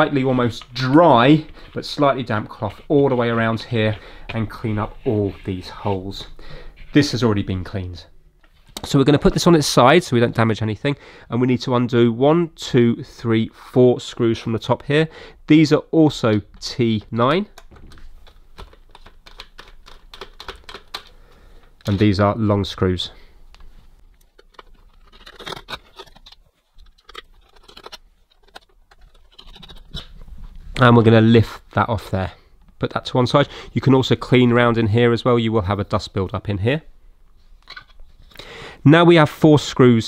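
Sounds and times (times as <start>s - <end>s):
person speaking: 0.0s - 21.1s, 21.8s - 23.4s, 27.5s - 36.9s.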